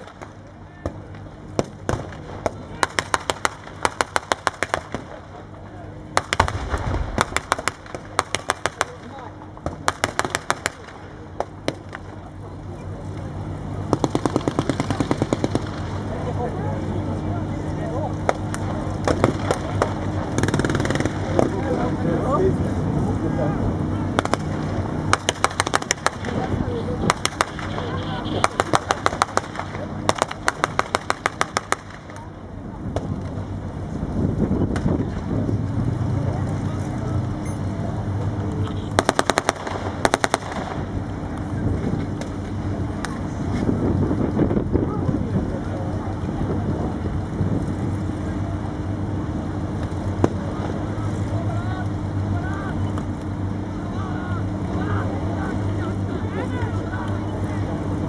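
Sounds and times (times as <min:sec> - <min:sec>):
tank engine running: 0:00.0 - 0:58.0
machine guns firing bursts: 0:06.2 - 0:09.1, 0:13.9 - 0:16.0, 0:19.1 - 0:21.4, 0:24.2 - 0:26.4, 0:39.0 - 0:40.8.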